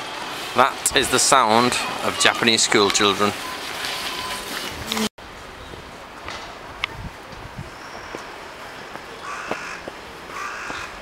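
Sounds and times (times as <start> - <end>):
crow cawing: 9.2 - 11.0.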